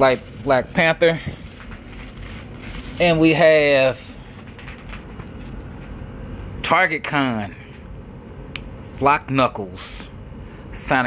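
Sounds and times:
plastic bag rustling: 0.0s - 6.0s.

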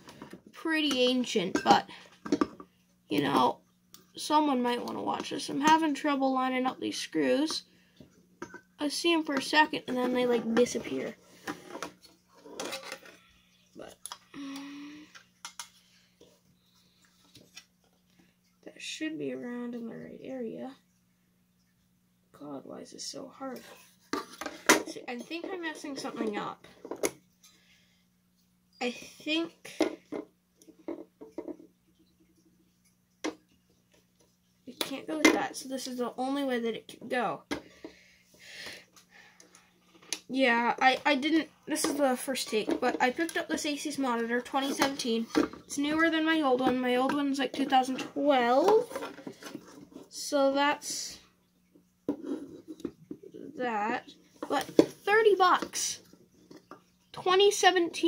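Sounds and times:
low electrical hum: 0.0s - 58.0s
small knocks: 29.8s - 32.1s.

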